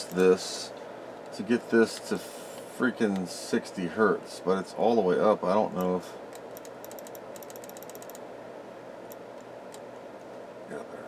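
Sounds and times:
background hum: 0:00.0 - 0:11.0.

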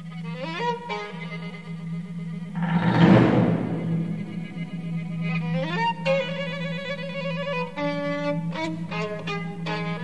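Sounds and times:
chamber orchestra music: 0:01.4 - 0:10.0.

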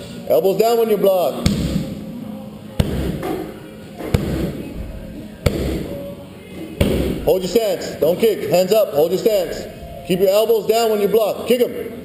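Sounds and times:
strikes smacking pads: 0:01.4 - 0:01.9, 0:02.8 - 0:04.7, 0:05.4 - 0:06.0, 0:06.8 - 0:07.4.

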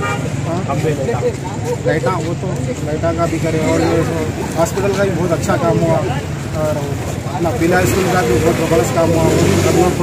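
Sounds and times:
man talking into a microphone: 0:00.3 - 0:10.0.

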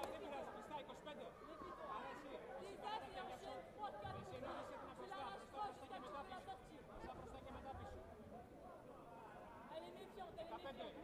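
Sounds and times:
echoing background chatter: 0:00.0 - 0:11.0.

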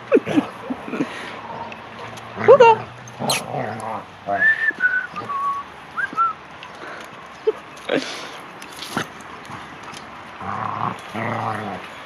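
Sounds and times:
dog growling: 0:03.2 - 0:04.1, 0:10.4 - 0:11.9.

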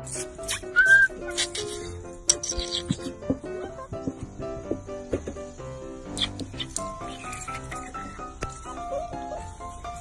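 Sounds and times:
plucked-string background music: 0:00.0 - 0:10.0
puppies squeaking: 0:00.1 - 0:04.2, 0:06.1 - 0:10.0.

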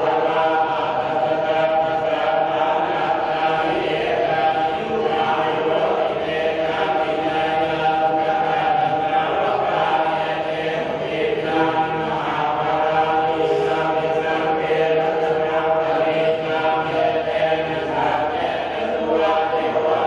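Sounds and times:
group chanting in unison: 0:00.0 - 0:20.0.

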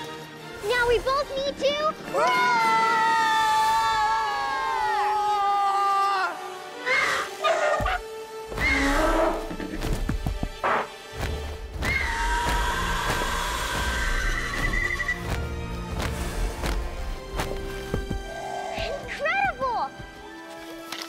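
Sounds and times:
background music: 0:00.0 - 0:21.0
pterosaur screeching call: 0:06.8 - 0:09.5, 0:11.8 - 0:15.2.

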